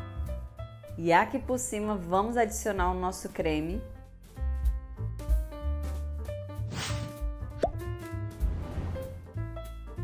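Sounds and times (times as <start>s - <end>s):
background music with bass line: 3.6s - 10.0s.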